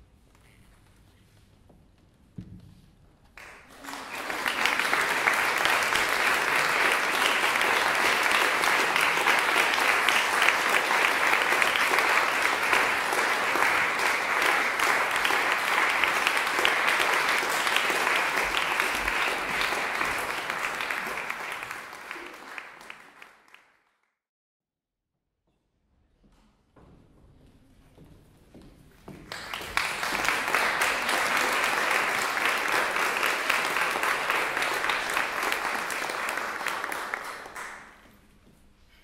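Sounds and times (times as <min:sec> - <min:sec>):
audience applauding: 0:03.4 - 0:24.0, 0:29.2 - 0:38.0.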